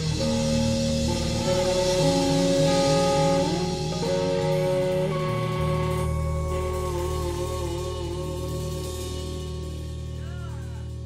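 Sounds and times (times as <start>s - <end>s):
bass guitar: 0.0s - 11.0s
drum kit: 0.0s - 11.0s
electric guitar lead notes: 0.0s - 11.0s.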